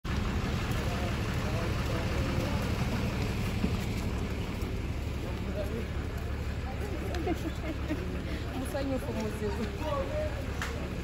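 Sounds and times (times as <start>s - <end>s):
voices chattering: 0.1s - 11.0s.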